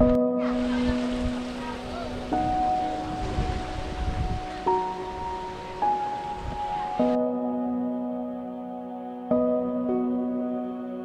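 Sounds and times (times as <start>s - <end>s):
sea noise: 0.0s - 7.8s
calm background music: 0.0s - 11.0s
wind: 0.0s - 11.0s.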